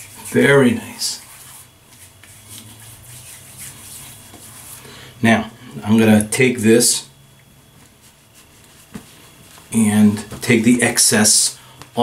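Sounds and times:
hands rubbing: 0:01.1 - 0:04.8, 0:07.8 - 0:09.8.

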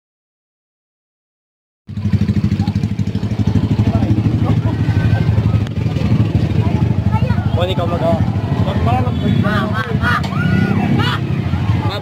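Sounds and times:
vehicle engine running: 0:01.9 - 0:12.0
faint crowd voices: 0:02.2 - 0:12.0.

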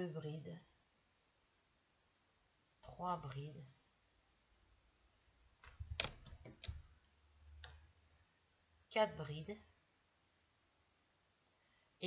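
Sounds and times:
crochet hook clicking: 0:05.6 - 0:06.9.

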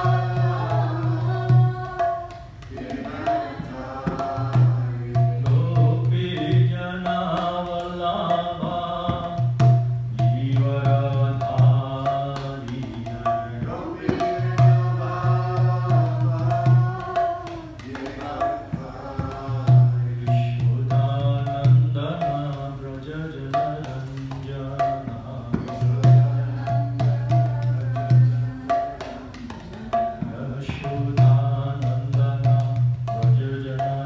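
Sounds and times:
man singing a chant: 0:00.0 - 0:02.1, 0:02.7 - 0:34.0
hand drum playing: 0:00.0 - 0:34.0.

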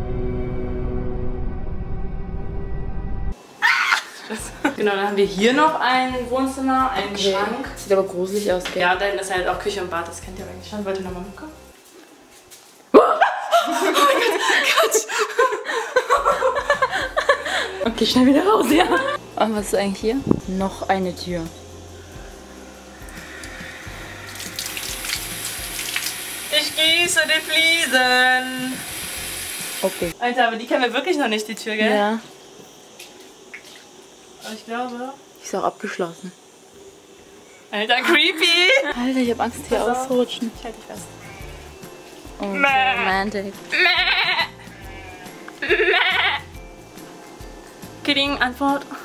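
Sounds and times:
background music: 0:04.2 - 0:11.9, 0:16.2 - 0:30.2, 0:38.5 - 0:49.0
hose water splashing on tiles: 0:23.0 - 0:30.2
woman imitating sheep bleat: 0:42.4 - 0:46.5.

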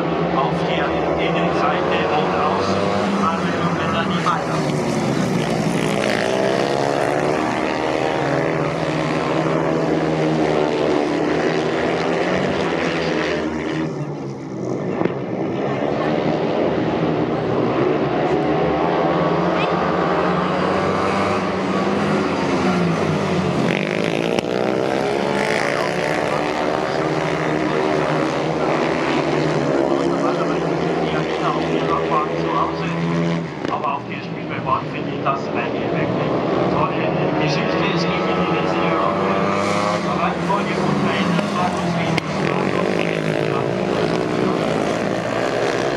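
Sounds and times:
racing sidecar engines revving: 0:00.0 - 0:45.9.

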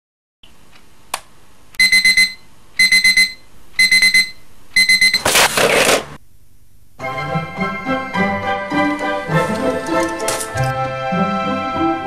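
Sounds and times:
alarm clock beeping: 0:01.8 - 0:05.3.

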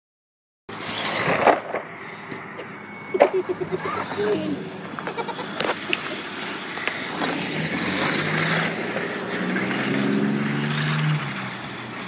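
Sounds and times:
rc truck on rough pavement: 0:00.7 - 0:12.0.

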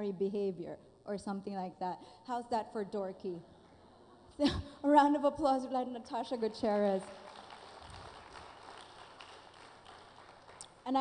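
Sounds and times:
audience applauding: 0:07.0 - 0:10.9.

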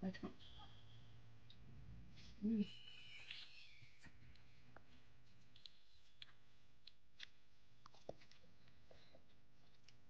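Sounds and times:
child chewing: 0:03.1 - 0:10.0.

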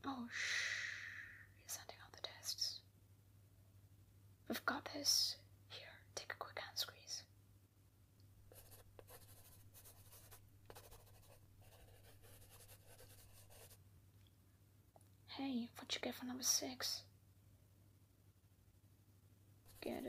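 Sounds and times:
person whispering: 0:00.0 - 0:02.8, 0:04.6 - 0:07.3, 0:19.7 - 0:20.0.

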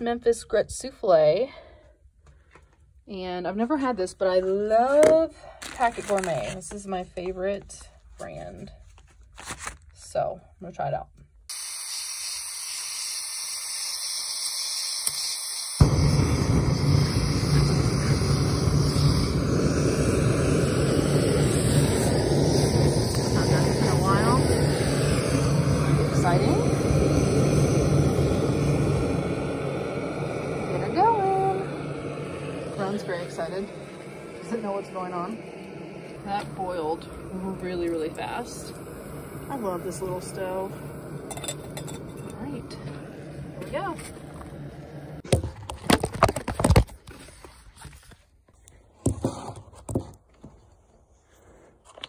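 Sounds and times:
gas hissing: 0:11.5 - 0:45.4
stove burner roaring: 0:11.5 - 0:46.8.

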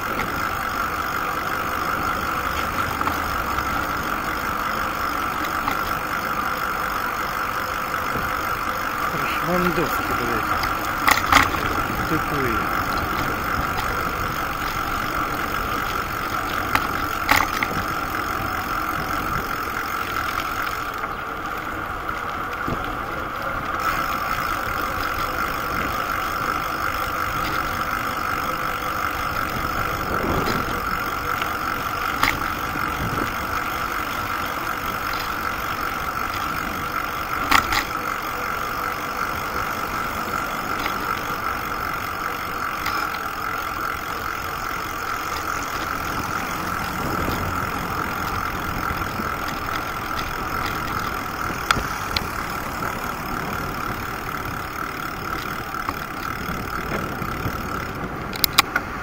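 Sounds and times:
bicycle ridden on paved path: 0:00.0 - 0:59.0.

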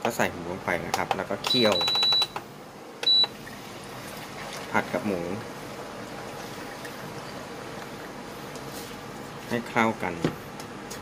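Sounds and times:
cooktop beeping: 0:01.5 - 0:02.4, 0:03.0 - 0:03.4.

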